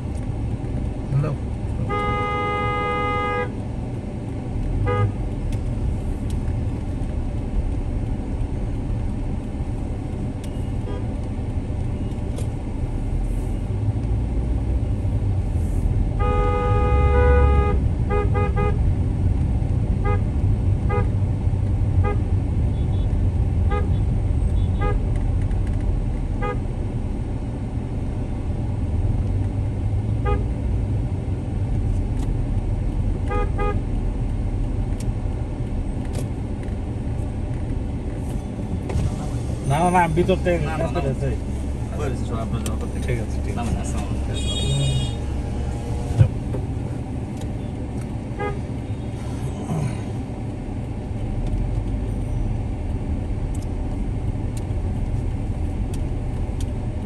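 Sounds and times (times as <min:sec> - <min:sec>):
vehicle rumble from inside: 0:00.0 - 0:57.0
car horn blasts and toots: 0:01.8 - 0:03.6, 0:04.8 - 0:05.2, 0:16.2 - 0:18.8, 0:20.0 - 0:21.1, 0:22.0 - 0:24.0, 0:24.6 - 0:25.0, 0:26.4 - 0:26.6, 0:30.2 - 0:30.5, 0:33.3 - 0:33.8, 0:44.3 - 0:46.2, 0:48.4 - 0:48.7.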